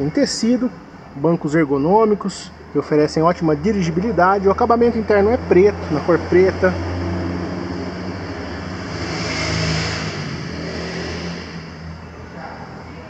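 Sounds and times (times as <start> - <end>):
steady low hum: 0.0 - 13.0
car driving past: 3.3 - 13.0.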